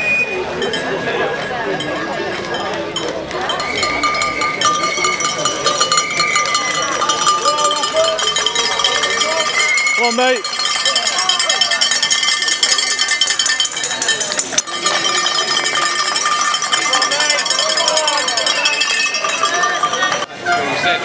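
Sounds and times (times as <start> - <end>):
cowbells ringing: 0.5 - 20.8
crowd cheering and shouting: 3.0 - 21.0.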